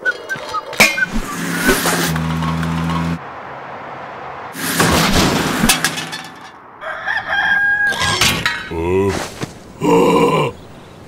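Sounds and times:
car engine humming: 0.0s - 6.8s
street background: 0.0s - 11.0s.

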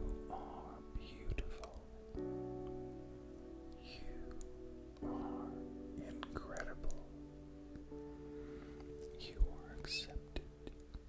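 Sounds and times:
faint whispered voice: 0.0s - 1.9s, 3.7s - 7.2s, 8.7s - 11.0s.

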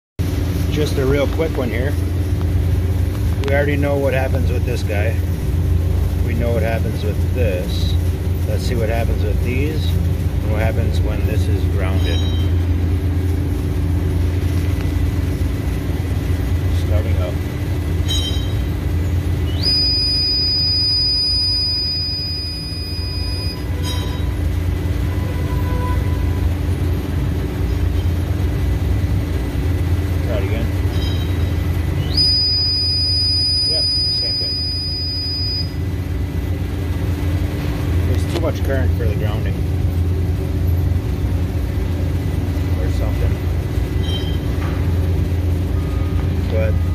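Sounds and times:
furnace high-pitched whine: 0.2s - 46.9s
steady low hum: 0.2s - 46.9s.

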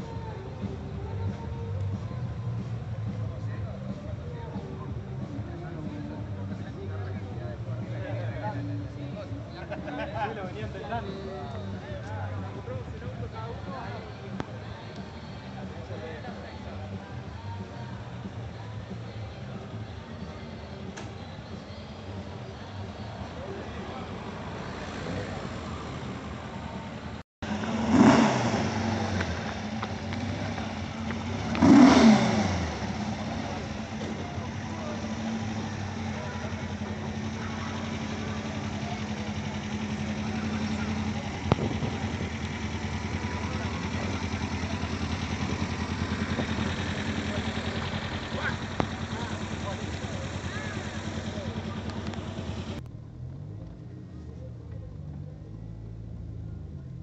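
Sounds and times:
people talking: 0.0s - 52.9s, 54.1s - 57.0s
car engine idling: 0.0s - 57.0s
cars passing at speed: 23.8s - 42.0s.

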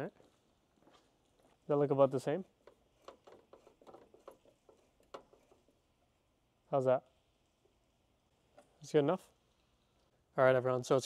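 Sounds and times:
screwdriver clicks and scratches: 2.6s - 5.7s.

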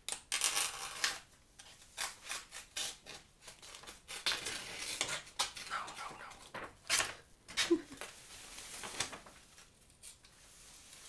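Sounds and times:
blade slicing paper: 0.1s - 5.6s.

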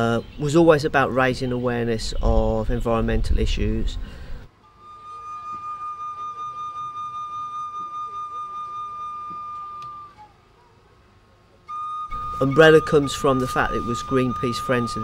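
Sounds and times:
high held musical note: 4.6s - 10.4s, 11.7s - 15.0s.

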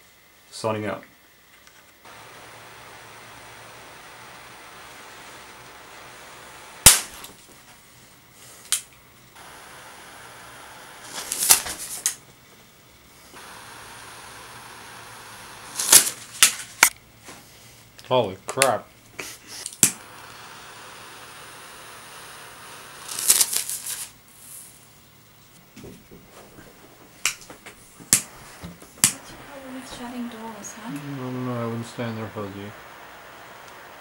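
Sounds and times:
butane torch flame hissing: 2.0s - 25.2s, 26.0s - 34.0s
lighter igniter clicking: 2.8s - 7.4s, 19.7s - 23.9s, 28.1s - 29.6s.

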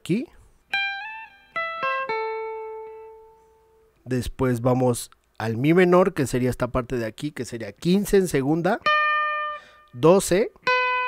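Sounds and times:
electric guitar note ringing: 0.7s - 4.0s, 8.8s - 10.0s, 10.6s - 11.0s.

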